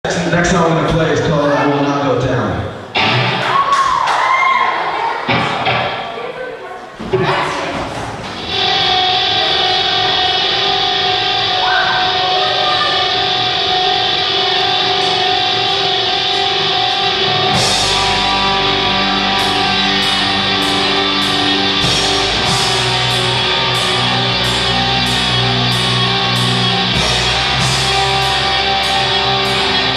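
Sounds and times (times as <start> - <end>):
bass guitar: 0.0 - 3.6, 7.9 - 29.9
electric guitar chord ringing: 0.2 - 3.5, 8.4 - 29.9.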